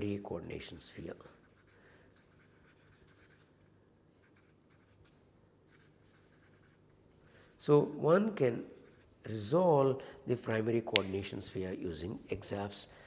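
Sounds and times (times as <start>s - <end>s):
marker scratching on paper: 1.2s - 3.6s, 4.2s - 9.2s.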